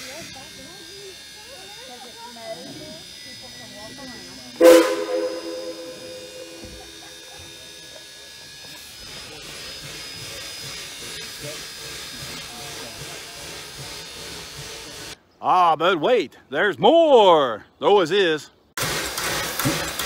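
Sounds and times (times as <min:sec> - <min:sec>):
steam locomotive whistle blast: 0:04.6 - 0:07.6.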